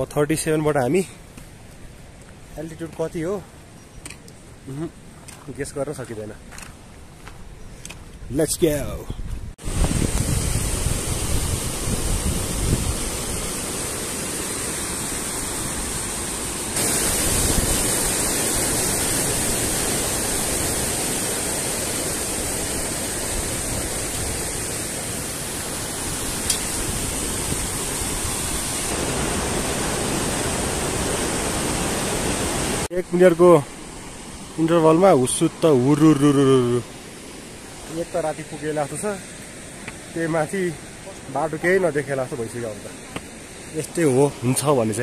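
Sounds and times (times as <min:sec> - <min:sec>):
fast-flowing water rushing: 0:09.6 - 0:45.0.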